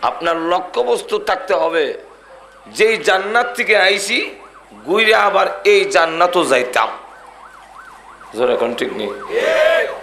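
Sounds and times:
man preaching in sing-song voice: 0:00.0 - 0:02.0, 0:02.7 - 0:07.0
faint siren: 0:01.3 - 0:10.0.

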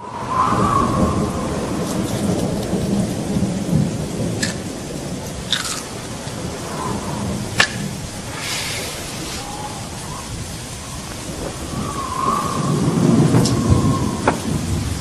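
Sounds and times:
low rumble of thunder: 0:00.0 - 0:15.0
rain falling: 0:00.0 - 0:15.0.

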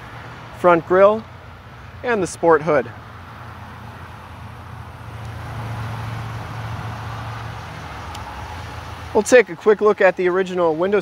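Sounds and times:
vehicle passing by: 0:00.0 - 0:11.0.

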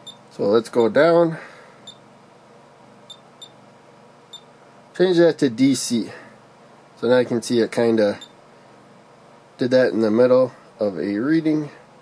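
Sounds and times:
high electronic key beeps: 0:00.0 - 0:00.2, 0:03.1 - 0:03.6.

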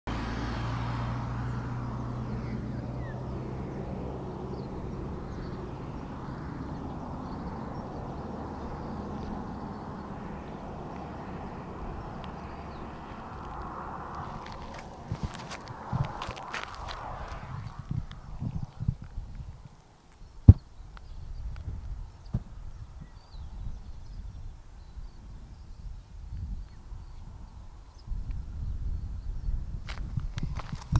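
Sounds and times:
car passing on highway: 0:00.1 - 0:20.1
wind rumble on microphone: 0:00.1 - 0:30.9
footsteps on gravel: 0:12.0 - 0:18.2, 0:29.9 - 0:30.9.

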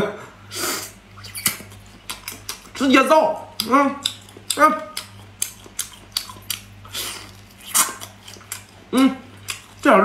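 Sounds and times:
person chewing: 0:00.7 - 0:10.0.

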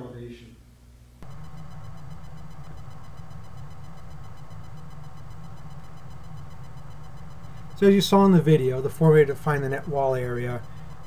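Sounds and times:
electrical hum and buzz: 0:00.0 - 0:11.0
high whine: 0:01.2 - 0:11.0.

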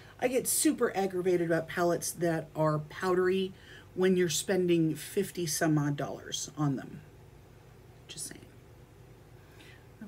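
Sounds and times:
low steady hum: 0:00.0 - 0:10.0
woman breathing softly: 0:03.6 - 0:04.0, 0:09.3 - 0:10.0.

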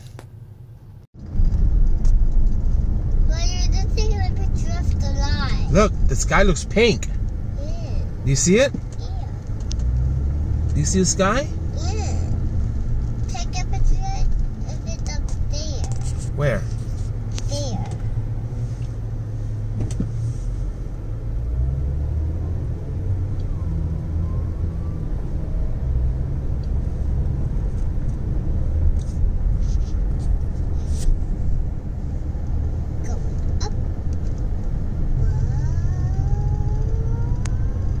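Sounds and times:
car road noise rumble: 0:00.0 - 0:38.0.

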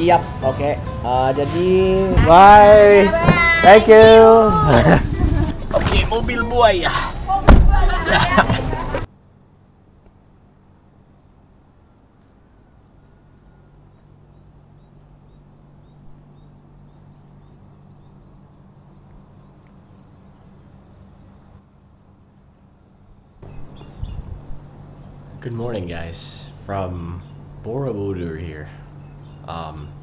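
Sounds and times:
crickets chirring: 0:00.0 - 0:30.0
low noise with thumps: 0:07.4 - 0:09.1.

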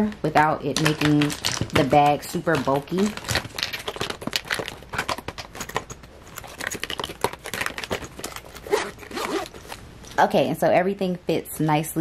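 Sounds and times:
plastic bottles clicking together: 0:00.0 - 0:08.6
metal zipper pulled shut: 0:07.9 - 0:09.8.

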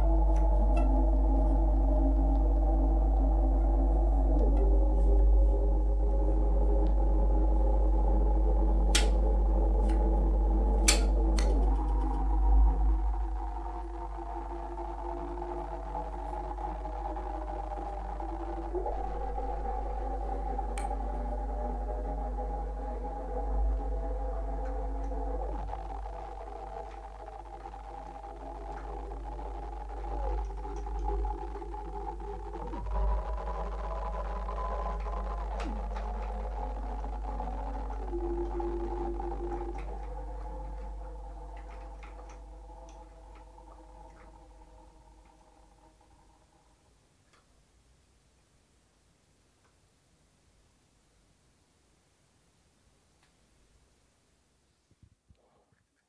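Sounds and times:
steady deep hum: 0:00.0 - 0:47.2.

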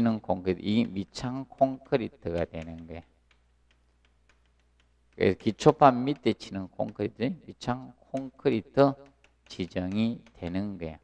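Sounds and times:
chalk tapping and scratching on blackboard: 0:00.3 - 0:11.0.

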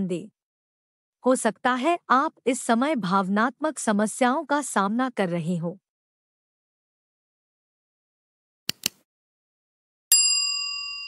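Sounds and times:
notification bell ding: 0:10.1 - 0:11.0.

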